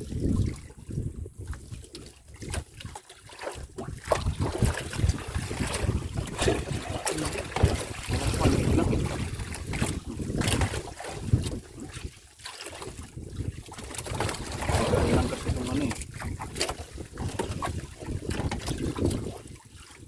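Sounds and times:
water lapping against boat: 0:00.0 - 0:20.0
wind buffeting microphone: 0:00.0 - 0:20.0.

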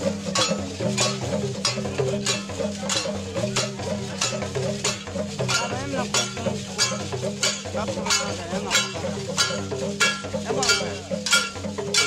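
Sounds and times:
rattles shaking in steady beat: 0:00.0 - 0:12.0.

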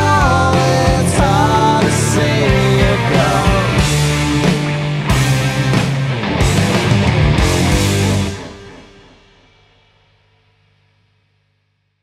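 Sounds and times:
rock band final chord: 0:00.0 - 0:09.4.

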